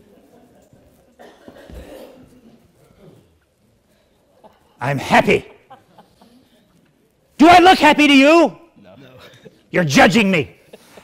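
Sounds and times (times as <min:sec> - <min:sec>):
person coughing: 0:01.2 - 0:03.3.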